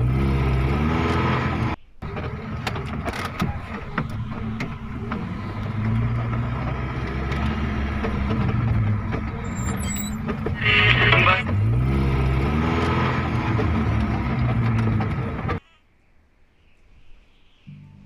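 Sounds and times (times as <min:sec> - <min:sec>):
pickup truck engine revving: 0:00.0 - 0:15.6.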